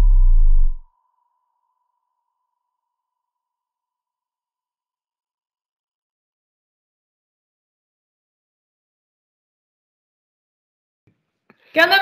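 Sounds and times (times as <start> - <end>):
deep bass boom sliding down: 0.0 - 0.8.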